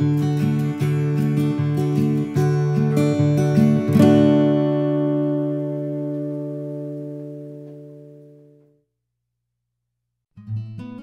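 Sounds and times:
plucked guitar notes and chord: 0.0s - 8.7s.

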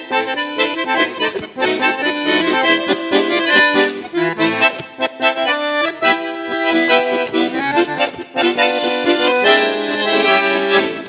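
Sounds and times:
bandoneon and accordion tango: 0.0s - 11.0s.

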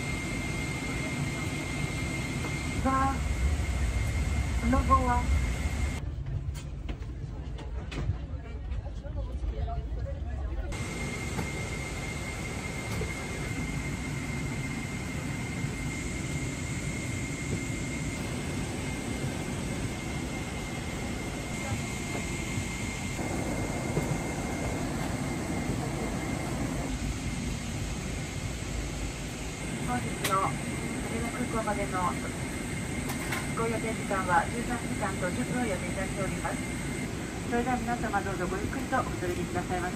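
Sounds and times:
airliner cabin noise: 0.0s - 39.9s.

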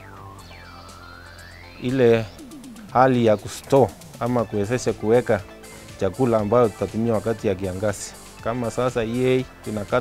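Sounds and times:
man speaking: 1.8s - 10.0s.

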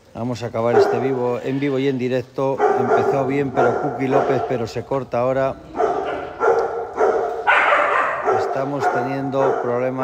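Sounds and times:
dog vocalising: 0.7s - 1.3s, 2.6s - 10.0s.

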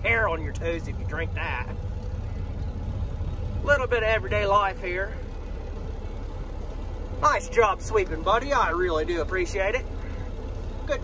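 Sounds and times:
diesel truck engine idling: 0.0s - 11.0s.

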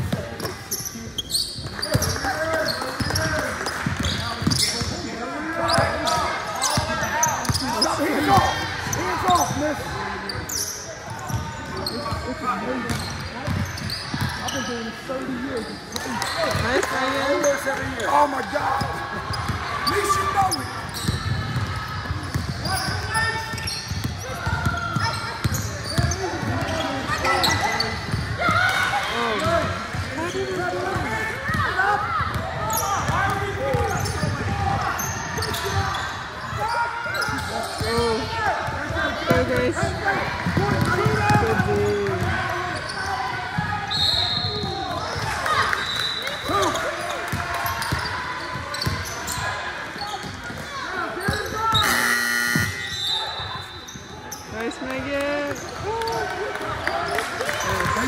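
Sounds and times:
players calling out: 0.0s - 58.0s.

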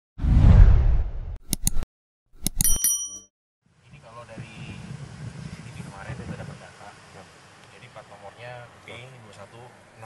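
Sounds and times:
quick clicks: 1.4s - 1.8s
bright bell-like ding: 2.6s - 3.3s.

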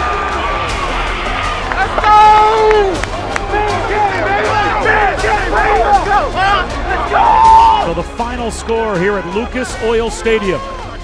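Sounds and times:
men shouting and whooping: 0.0s - 8.0s.

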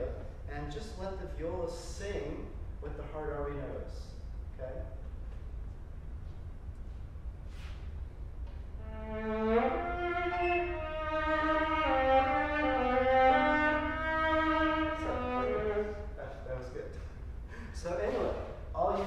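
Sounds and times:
solo viola bowed: 8.8s - 16.2s.

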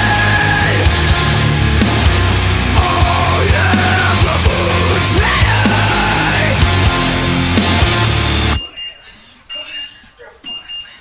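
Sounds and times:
heavy metal music: 0.0s - 8.6s
electronic alarm beeping: 8.6s - 11.0s.

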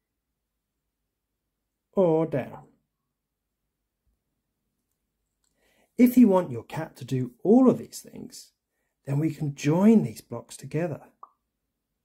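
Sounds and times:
person speaking: 1.9s - 2.8s, 6.0s - 11.2s.

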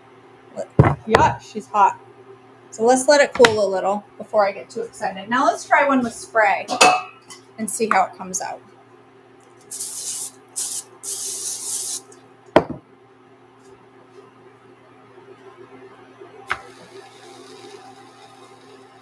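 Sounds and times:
cooking spray hissing: 9.7s - 12.1s, 16.5s - 19.0s.

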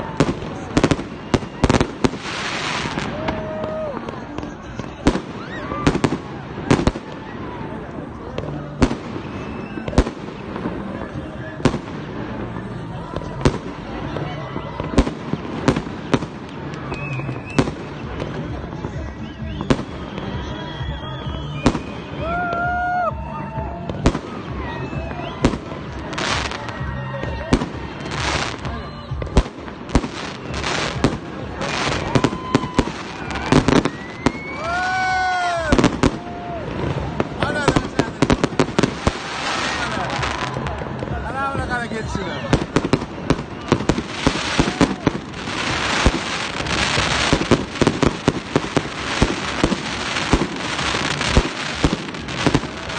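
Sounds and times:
fireworks bursting with bangs: 0.0s - 52.9s
fireworks whistling: 0.0s - 52.9s.

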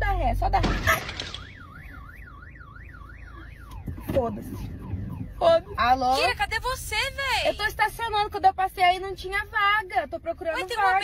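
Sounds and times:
car alarm warbling siren: 0.6s - 7.4s.

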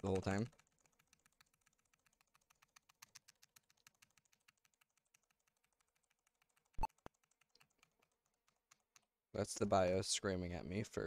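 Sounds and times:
computer keyboard keys tapping: 0.0s - 9.2s.

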